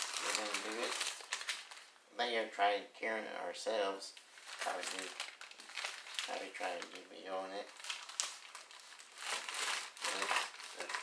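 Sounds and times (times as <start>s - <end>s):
paper wrapping crinkling: 0.0s - 1.9s, 4.2s - 11.0s.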